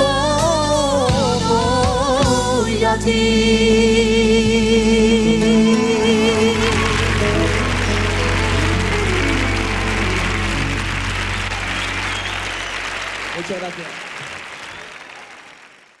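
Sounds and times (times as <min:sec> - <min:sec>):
band held final chord: 0:05.4 - 0:13.3
audience applauding: 0:05.6 - 0:16.0.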